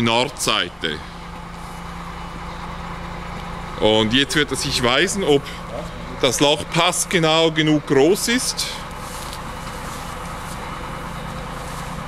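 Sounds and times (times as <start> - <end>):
crane engine humming: 0.0 - 12.0.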